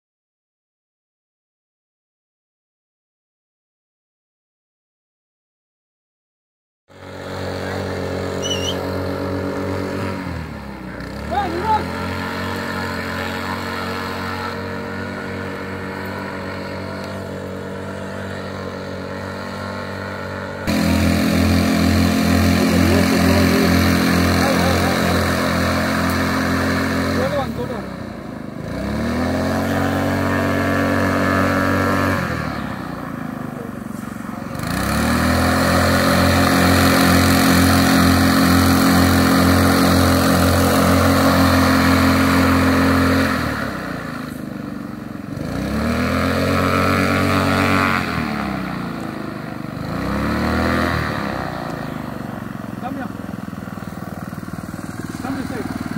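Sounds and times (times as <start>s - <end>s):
propeller: 6.9s - 55.9s
small engine revving: 6.9s - 55.9s.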